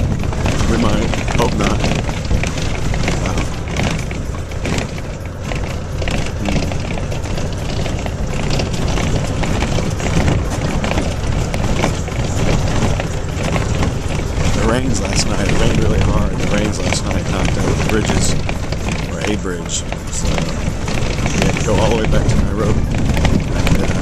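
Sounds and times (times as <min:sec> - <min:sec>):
bus engine and road rumble: 0:00.0 - 0:24.0
rattling and knocks: 0:00.0 - 0:24.0.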